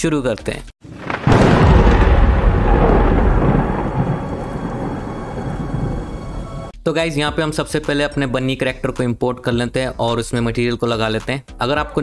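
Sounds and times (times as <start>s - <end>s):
thunder crack and rumble: 0.8s - 6.7s.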